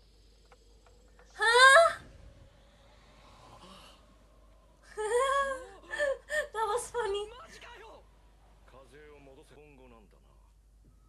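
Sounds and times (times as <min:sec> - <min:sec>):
woman laughing: 0:05.0 - 0:07.3.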